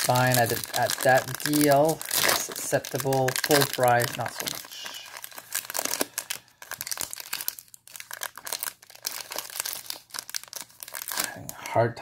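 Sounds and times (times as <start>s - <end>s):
foil wrapper crinkling: 0.0s - 11.5s.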